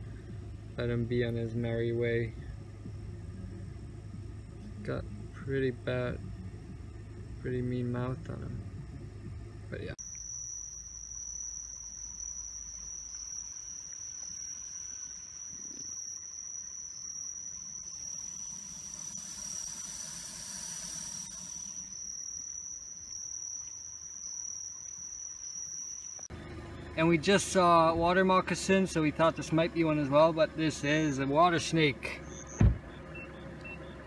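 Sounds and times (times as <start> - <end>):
night insects trilling: 0.1 - 26.3, 27.0 - 32.6
hissing insect buzz: 10.0 - 26.3.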